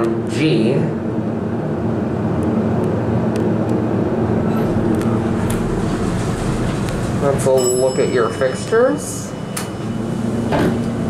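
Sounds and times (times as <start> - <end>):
ventilation fan whirring: 0.0 - 11.0.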